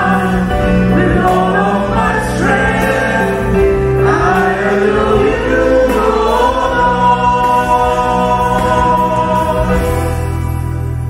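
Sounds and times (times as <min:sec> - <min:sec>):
choir singing a hymn: 0:00.0 - 0:10.7.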